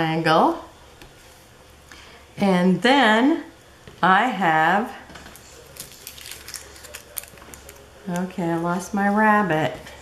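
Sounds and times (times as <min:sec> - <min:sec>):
paper rustling: 0:05.2 - 0:08.3.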